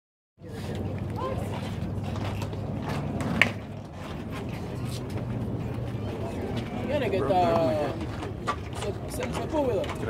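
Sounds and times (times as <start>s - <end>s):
steady low hum: 0.4s - 9.1s.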